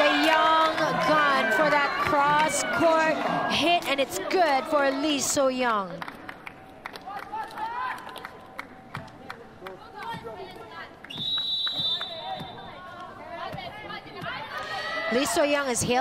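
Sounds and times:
crowd voices: 0.0s - 5.8s
sharp claps: 11.0s - 12.4s
referee's whistle: 11.1s - 12.8s.

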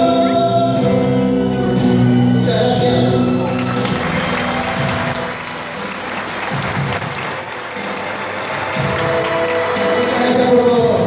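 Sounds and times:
live band music: 0.0s - 11.0s
audience applauding: 3.2s - 11.0s.

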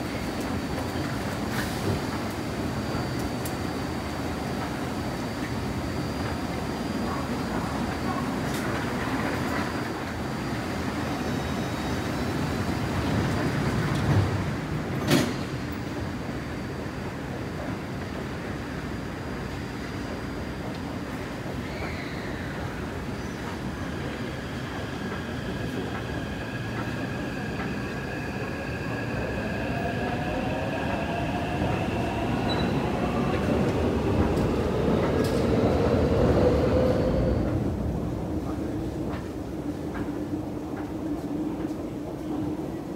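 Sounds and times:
train rumbling: 0.0s - 42.9s.

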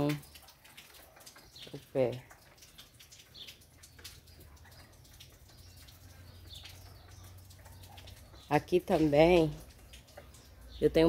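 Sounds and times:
distant bird chirps: 0.0s - 11.0s.

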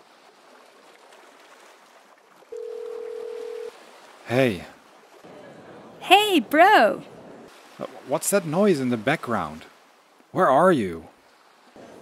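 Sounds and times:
faint surf: 0.0s - 12.0s
telephone ringback tone: 2.5s - 3.7s.

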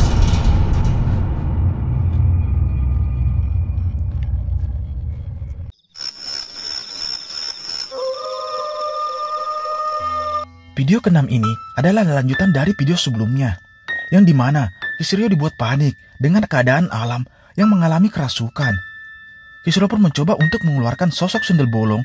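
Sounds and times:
eerie sustained music: 0.0s - 5.7s, 7.9s - 17.1s
low heavy rumbling sting: 0.0s - 5.7s.

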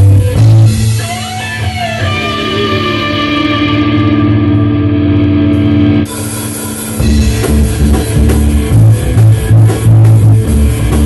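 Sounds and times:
electric guitars sustained chord: 0.0s - 11.0s.

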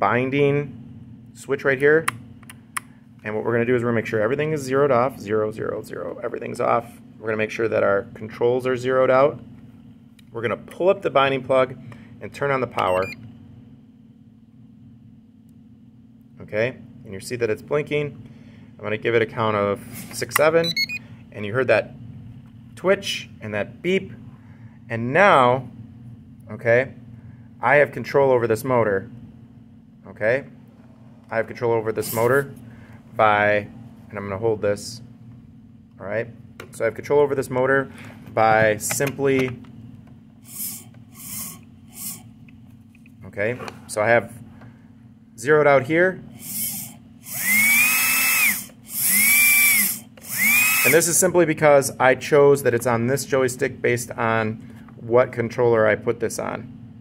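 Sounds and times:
low electrical hum: 0.0s - 57.0s
high-pitched electronic beep: 20.6s - 21.0s
small electric motor spinning up: 40.5s - 42.2s, 46.4s - 51.1s.

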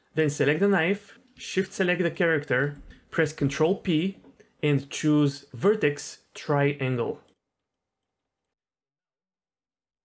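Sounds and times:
narrator speaking: 0.1s - 7.3s.

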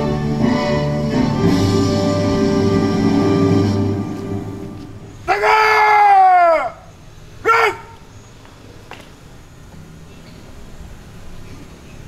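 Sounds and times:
man shouting drill command: 5.2s - 6.8s, 7.4s - 8.0s.

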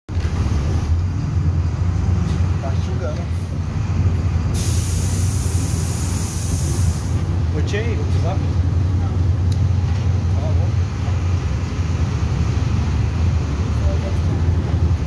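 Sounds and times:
bus diesel engine droning: 0.1s - 15.0s
compressed air hiss: 4.6s - 7.2s.

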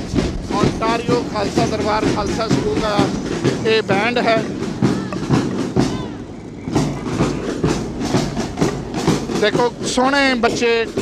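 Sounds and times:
bass drum beating: 0.0s - 11.0s
snare drums: 0.0s - 11.0s.

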